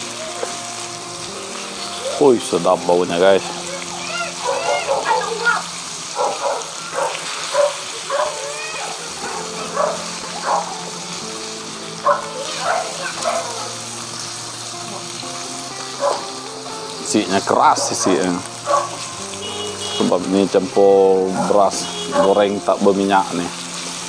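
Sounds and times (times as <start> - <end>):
background music: 0.0 - 24.0
fish sizzling in a wok: 0.0 - 24.0.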